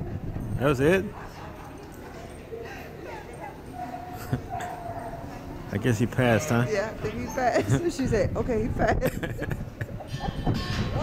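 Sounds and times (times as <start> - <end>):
people talking faintly: 1.2 - 9.2.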